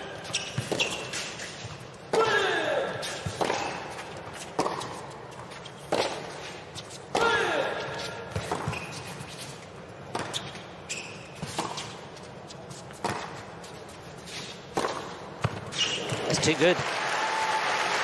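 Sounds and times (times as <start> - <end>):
racket striking tennis ball: 0.3 - 5.1, 5.8 - 9.4, 11.4 - 12.1, 12.7 - 16.6
tennis ball bouncing: 3.2 - 9.4, 10.1 - 10.7, 11.4 - 12.0, 12.7 - 16.6.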